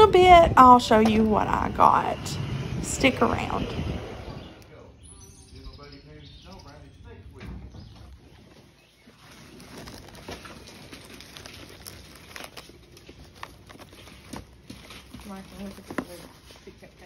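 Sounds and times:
paper and cardboard rustling: 0:08.1 - 0:17.0.

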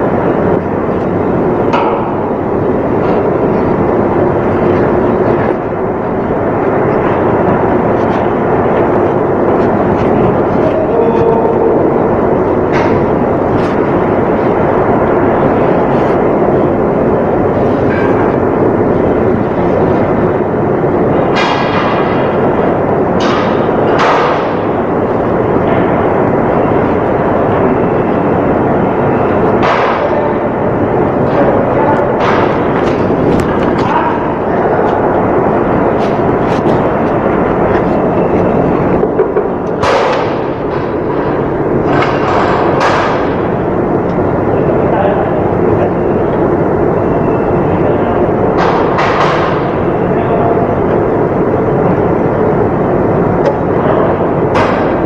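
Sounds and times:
loud machinery noise: 0:00.0 - 0:55.0.

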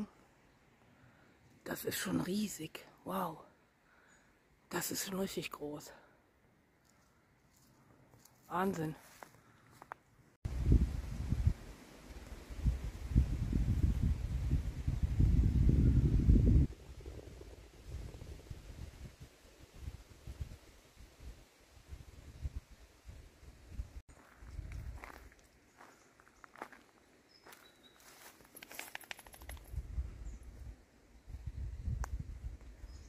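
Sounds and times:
faint outdoor background: 0:00.0 - 0:33.0
wind buffeting microphone: 0:10.5 - 0:11.7, 0:12.4 - 0:20.7, 0:29.6 - 0:30.7, 0:31.3 - 0:33.0
rattle of sharp clicks: 0:28.5 - 0:29.8.

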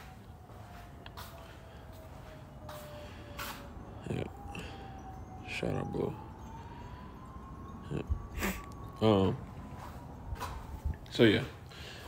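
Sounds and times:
distant siren rising in pitch: 0:00.0 - 0:12.0.

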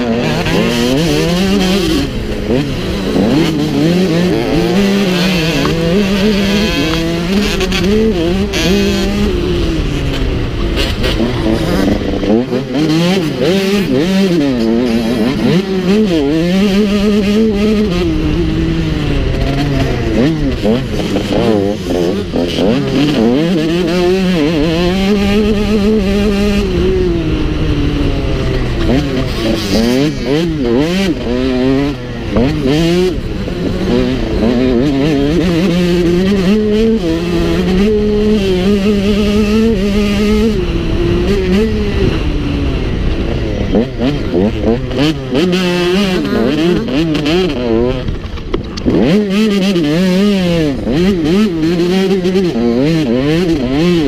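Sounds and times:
motocross bike engine revving: 0:00.0 - 0:54.0.

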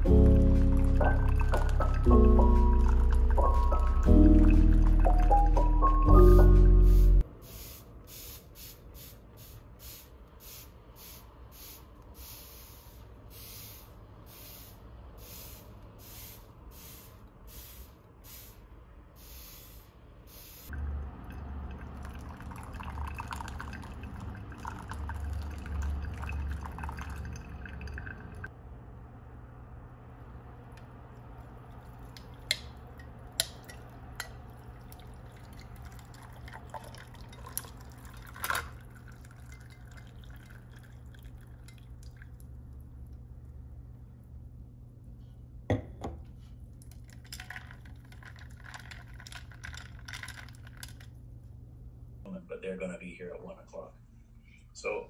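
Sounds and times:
liquid trickling: 0:00.0 - 0:05.9, 0:20.7 - 0:28.5, 0:30.8 - 0:43.8, 0:46.7 - 0:51.1
spray bottle hissing sprays: 0:06.7 - 0:20.7
ice cracking and clinking on glass: 0:35.3 - 0:40.8, 0:46.9 - 0:51.1.

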